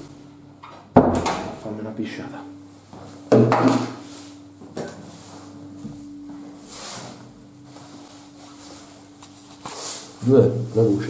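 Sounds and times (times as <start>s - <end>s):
steady low hum: 0.0s - 11.0s.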